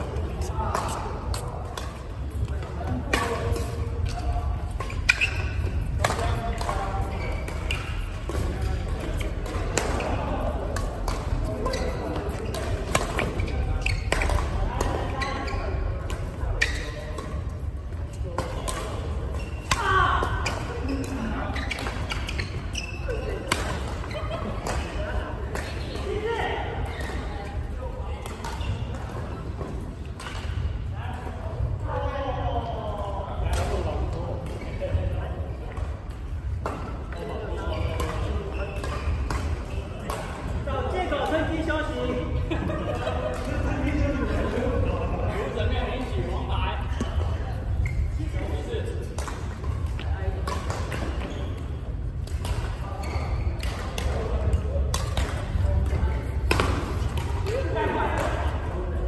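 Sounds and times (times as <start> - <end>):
voices of players: 0.0 - 59.0
rackets striking shuttlecock: 53.5 - 58.7.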